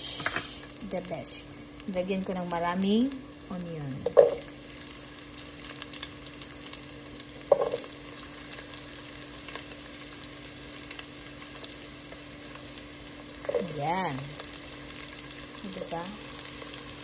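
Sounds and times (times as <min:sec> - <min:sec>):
onion and garlic sizzling in oil: 0:00.0 - 0:17.0.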